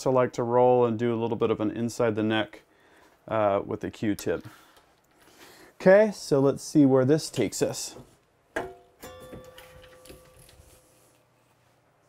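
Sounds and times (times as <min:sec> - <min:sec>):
metal clank of reloading press: 0:08.6 - 0:10.8
ringing metallic strike: 0:08.7 - 0:11.0.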